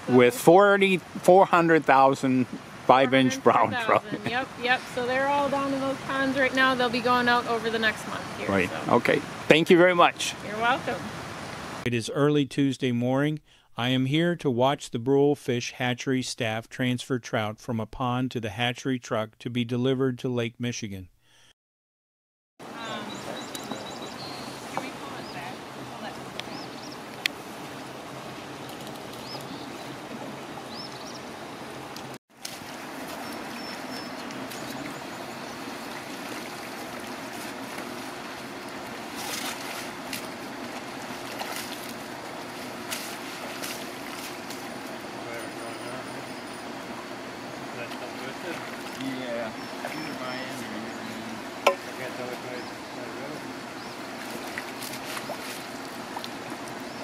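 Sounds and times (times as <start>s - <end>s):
running water rushing: 0.0s - 11.9s, 22.6s - 57.0s
water sloshing around waders: 22.7s - 57.0s.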